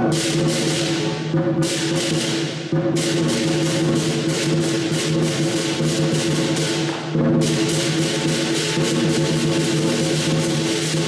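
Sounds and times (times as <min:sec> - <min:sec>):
hand cymbal crashes: 0:00.0 - 0:11.0
large drum: 0:00.0 - 0:11.0.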